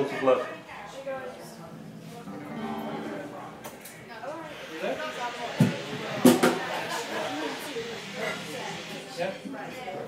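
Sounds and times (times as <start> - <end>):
indistinct talk: 0.0 - 10.0.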